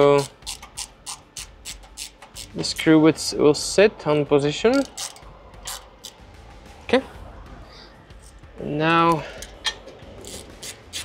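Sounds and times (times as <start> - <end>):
metal scrape of wrench: 4.7 - 6.2, 9.1 - 11.0.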